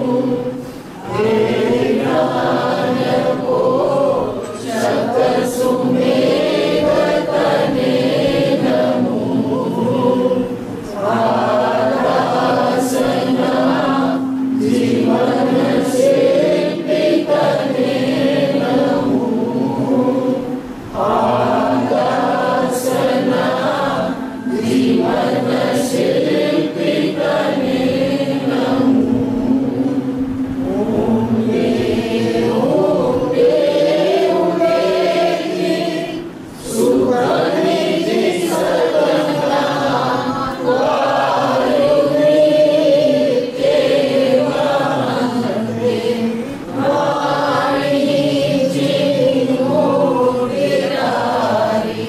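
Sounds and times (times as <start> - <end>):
voices chanting together: 0.0 - 52.0.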